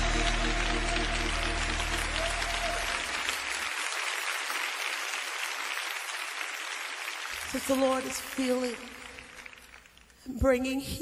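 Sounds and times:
crowd applauding: 0:00.0 - 0:10.2.

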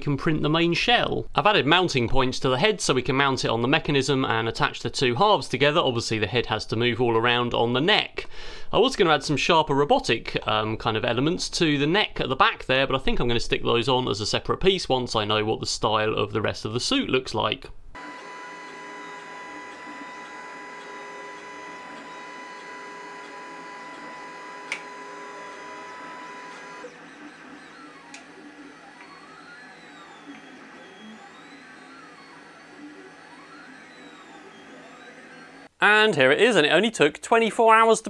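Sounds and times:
printer motors whining: 0:18.0 - 0:35.8
sharp click: 0:24.7 - 0:24.9.

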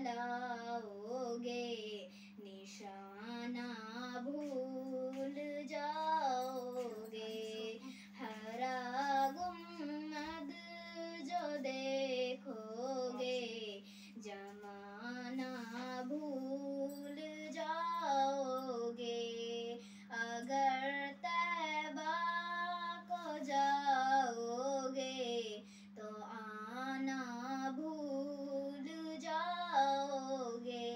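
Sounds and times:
girl singing unaccompanied: 0:00.0 - 0:30.9
low steady hum: 0:00.0 - 0:30.9.

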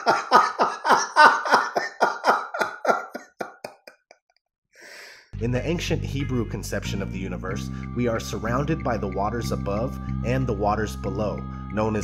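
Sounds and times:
person laughing hard: 0:00.0 - 0:04.1.

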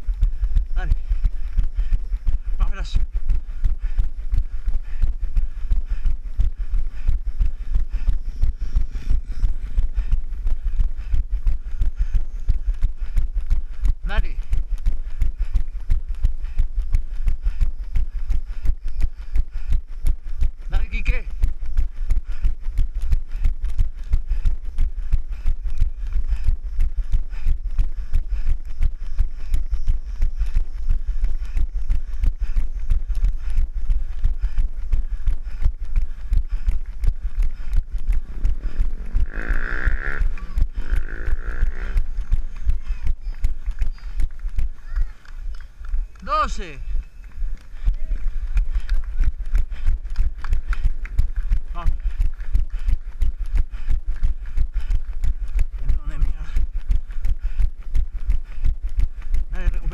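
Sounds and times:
running footsteps on asphalt: 0:00.0 - 0:59.9.

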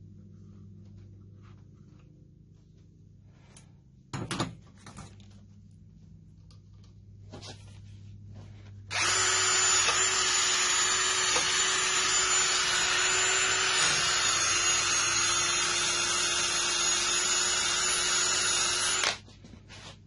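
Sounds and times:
cordless drill motor whine: 0:08.9 - 0:19.2.

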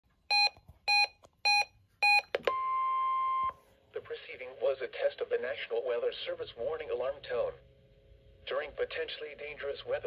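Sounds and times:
short electronic beeps: 0:00.3 - 0:03.5.

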